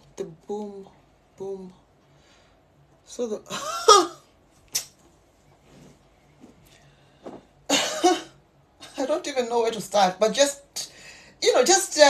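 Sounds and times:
woman coughing: 3.5s - 4.2s, 7.7s - 8.4s.

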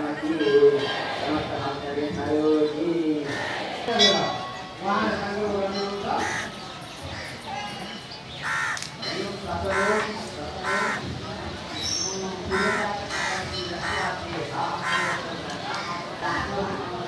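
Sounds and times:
murmur of voices: 0.0s - 17.0s
crows cawing: 6.2s - 7.5s, 8.4s - 9.0s, 9.7s - 11.1s, 12.5s - 14.2s, 14.8s - 16.5s.

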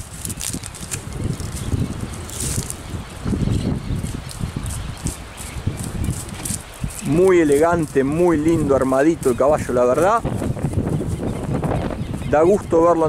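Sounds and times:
rustle: 0.0s - 12.0s
horse hoofbeats on grass: 0.0s - 13.0s.

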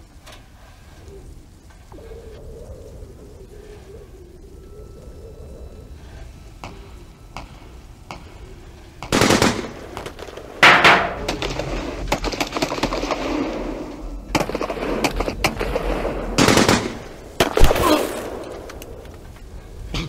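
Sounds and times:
rumbling noise: 0.0s - 20.0s
rapid sharp gunshot cracks: 9.0s - 19.0s
gunfire bursts: 9.1s - 18.8s.

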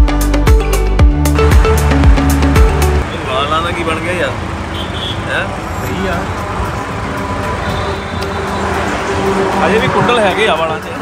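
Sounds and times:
highway traffic: 0.1s - 11.0s.

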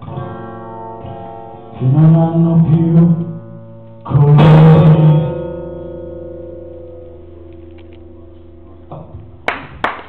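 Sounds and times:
acoustic guitar chord ringing: 0.0s - 7.5s
hand claps: 9.4s - 10.0s.

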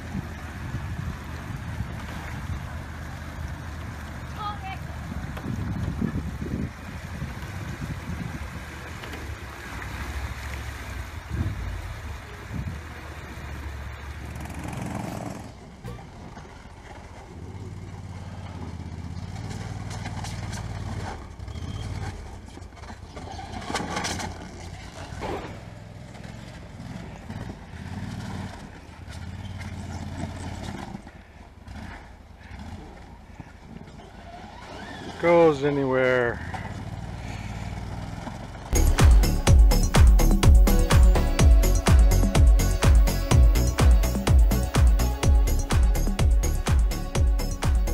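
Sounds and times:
water splashing: 0.0s - 18.3s
small vehicle engine running: 0.0s - 47.9s.

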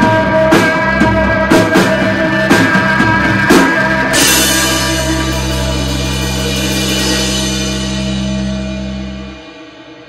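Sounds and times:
bass guitar: 0.0s - 10.0s
electric guitars ringing: 0.0s - 10.0s
cymbals sustaining: 4.1s - 10.0s.

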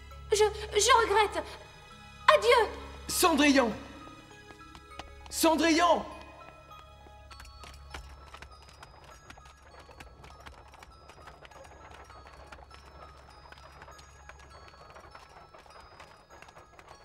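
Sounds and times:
soft background music: 0.0s - 17.0s
horse hooves clip-clopping: 4.2s - 17.0s.

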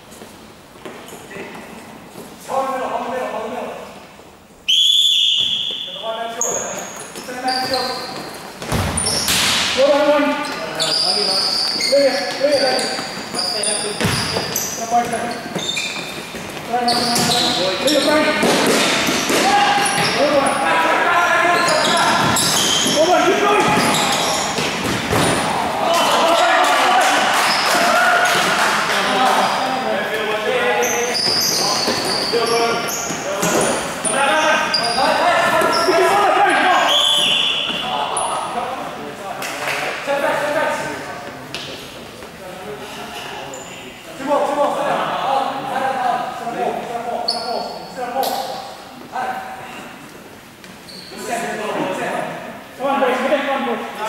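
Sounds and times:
shoes squeaking on court floor: 4.8s - 26.6s, 27.4s - 28.5s, 29.2s - 29.8s, 30.6s - 38.6s, 47.2s - 48.6s, 50.5s - 51.5s
players calling out: 9.0s - 39.0s
ball kicks and bounces: 14.0s - 14.5s.

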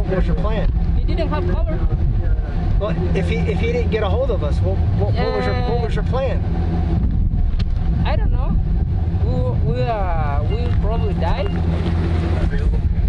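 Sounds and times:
vehicle engine idling: 0.0s - 13.0s
person speaking: 5.1s - 6.0s.

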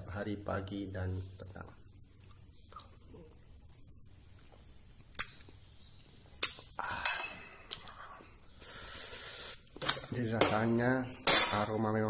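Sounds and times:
breathy hiss: 6.6s - 9.8s
man breathing out: 6.8s - 9.7s.

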